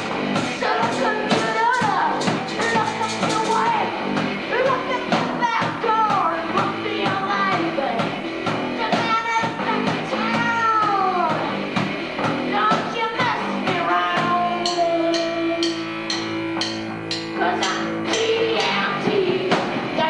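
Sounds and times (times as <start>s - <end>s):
bass guitar: 0.0s - 20.0s
distorted electric guitar: 0.0s - 20.0s
drums: 0.0s - 20.0s.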